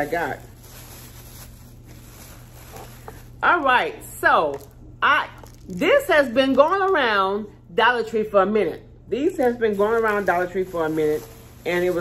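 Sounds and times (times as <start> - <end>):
plastic packaging rustling: 0.0 - 3.4, 4.5 - 5.8, 9.4 - 12.0
steady low hum: 0.0 - 12.0.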